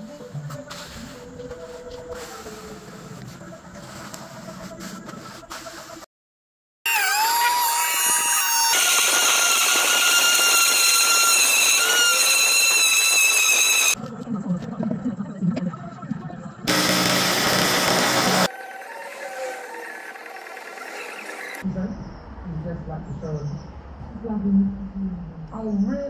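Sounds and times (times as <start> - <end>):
disc cutter cutting stone slab: 6.9 - 14.0, 16.7 - 21.6.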